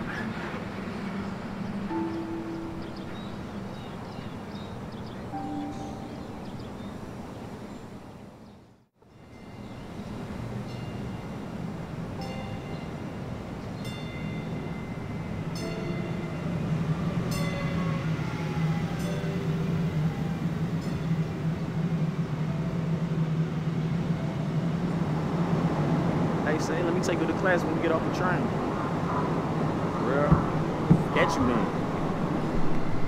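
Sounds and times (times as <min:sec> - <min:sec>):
train rumbling: 0:00.0 - 0:08.4, 0:09.2 - 0:33.0.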